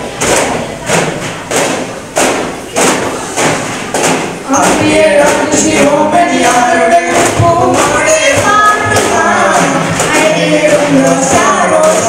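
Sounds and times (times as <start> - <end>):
frame drums struck in rhythm: 0.0 - 12.0
group singing: 4.0 - 12.0.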